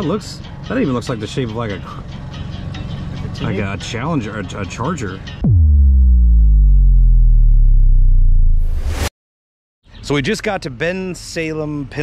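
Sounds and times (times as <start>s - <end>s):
deep synthesizer bass note: 5.4s - 9.1s.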